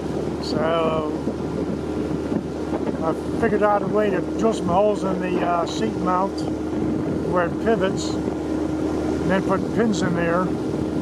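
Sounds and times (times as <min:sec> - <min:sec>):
motorboat engine running: 0:00.0 - 0:11.0
wind buffeting microphone: 0:00.0 - 0:11.0.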